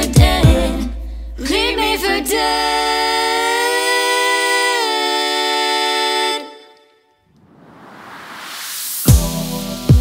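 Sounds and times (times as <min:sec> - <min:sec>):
voices singing harmony a cappella: 0:00.0 - 0:07.0.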